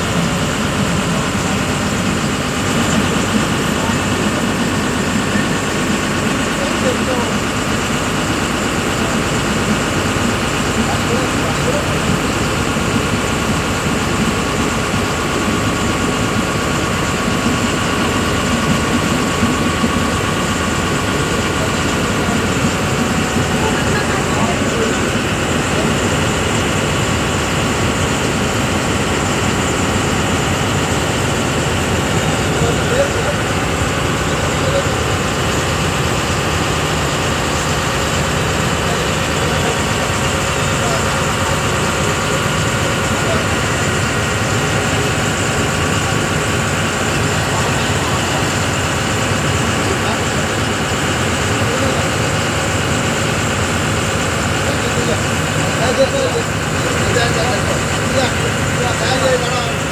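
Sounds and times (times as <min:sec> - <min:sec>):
boat engine droning: 0:00.0 - 0:59.9.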